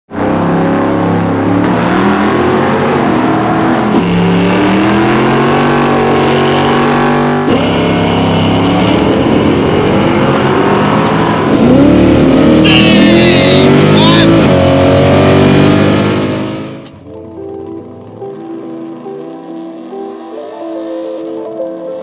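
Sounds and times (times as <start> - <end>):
drag car engines revving: 0.1 - 21.5
guitar music: 0.2 - 22.0.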